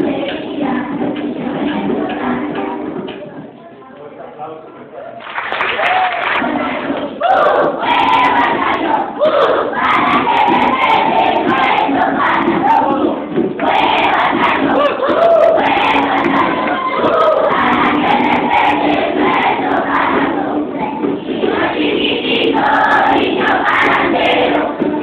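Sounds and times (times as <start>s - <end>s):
children singing together: 0.0s - 3.4s, 6.4s - 25.0s.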